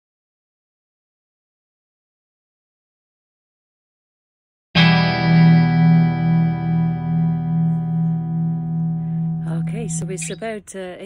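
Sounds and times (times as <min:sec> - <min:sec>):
guitar chord ringing: 0:04.8 - 0:10.5.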